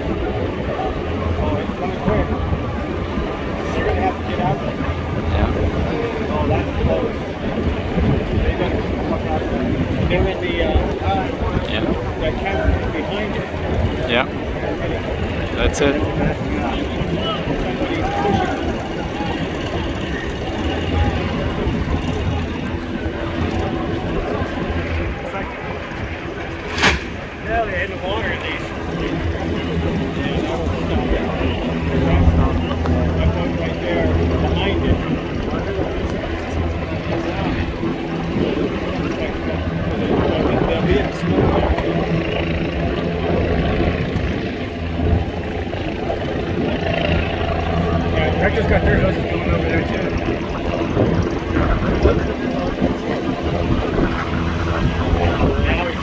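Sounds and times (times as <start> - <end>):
boat engine rumbling: 0.0 - 56.0
people talking: 0.0 - 56.0
engine hum: 18.5 - 40.2.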